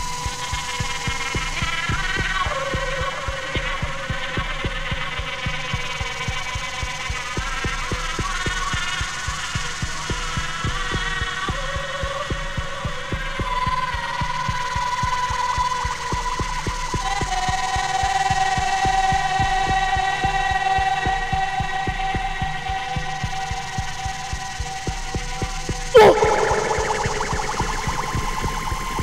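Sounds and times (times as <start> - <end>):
electronic music: 26.0 - 29.0.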